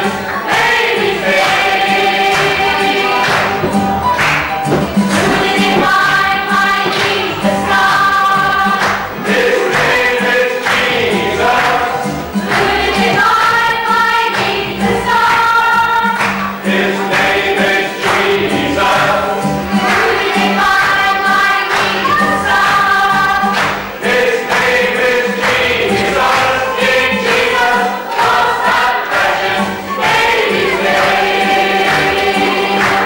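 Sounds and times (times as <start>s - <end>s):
mixed choir singing: 0.0s - 33.0s
hands clapping in time: 2.3s - 10.0s, 23.5s - 23.8s, 31.9s - 33.0s.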